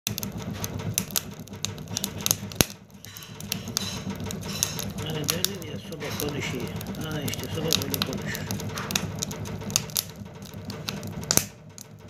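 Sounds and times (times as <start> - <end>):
firewood crackling and popping: 0.1 - 12.0
low fire rumble: 0.1 - 12.0.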